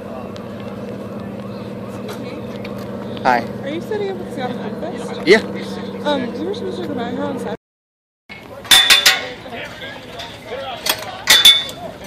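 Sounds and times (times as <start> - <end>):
engine humming steadily: 0.0 - 7.6
people talking faintly: 0.0 - 7.6.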